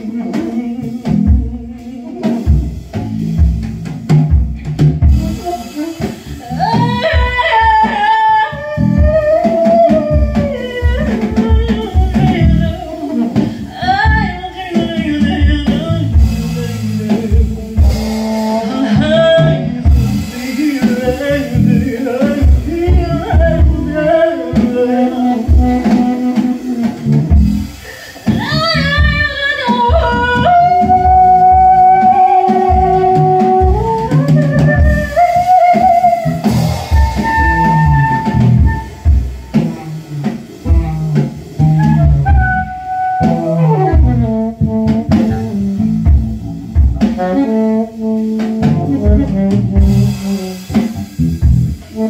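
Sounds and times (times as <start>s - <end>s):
woman singing operatically: 0.0s - 2.8s, 5.2s - 27.1s, 28.2s - 41.0s
drum kit: 0.0s - 52.0s
electric bass notes: 0.0s - 52.0s.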